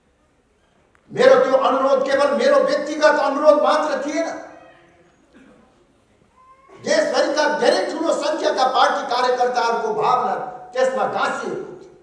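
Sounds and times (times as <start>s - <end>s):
man speaking: 1.1s - 4.5s, 6.8s - 11.9s.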